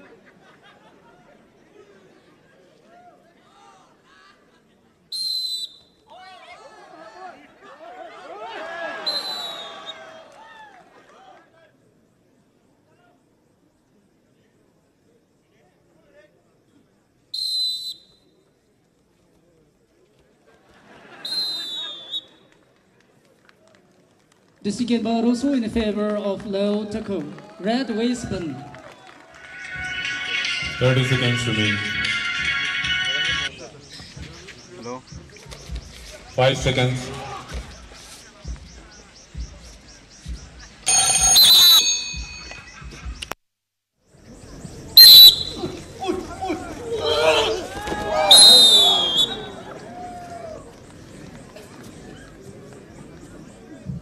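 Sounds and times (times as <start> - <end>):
crowd noise: 0.0 - 43.4, 44.1 - 54.0
referee's whistle blasts: 5.1 - 6.0, 9.0 - 10.0, 17.3 - 18.3, 21.3 - 22.4, 40.9 - 42.6, 45.0 - 45.9, 48.2 - 49.6
soft low thumps: 37.5 - 40.8.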